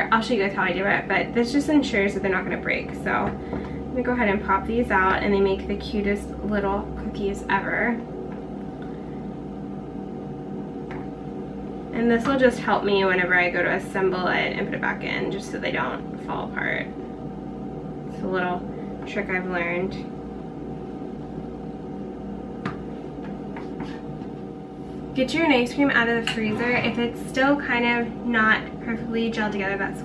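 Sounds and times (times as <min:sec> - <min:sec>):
steady tonal hum: 0:00.0 - 0:30.0.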